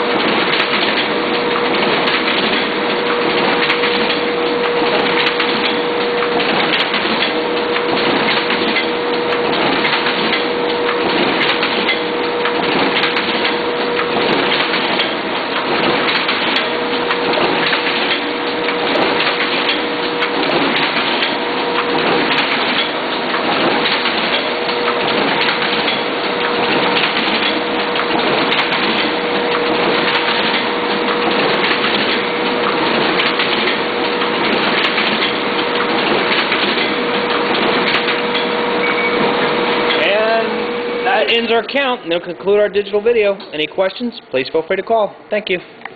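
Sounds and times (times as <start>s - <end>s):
machine clattering: 0.0s - 44.0s
machine hum: 0.0s - 45.9s.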